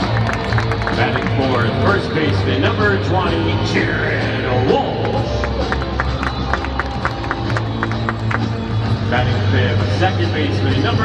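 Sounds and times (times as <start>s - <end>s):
crowd applauding and cheering: 0.0s - 3.6s, 4.2s - 11.0s
music over stadium speakers: 0.0s - 11.0s.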